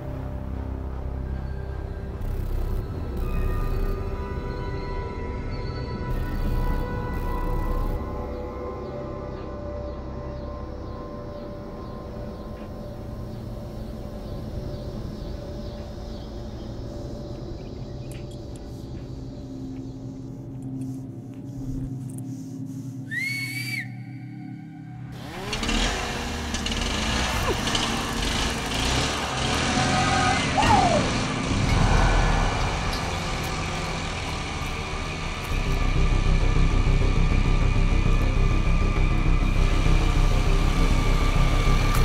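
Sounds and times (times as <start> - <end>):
dense tense music: 0.0 - 42.0
low ominous drone: 0.0 - 42.0.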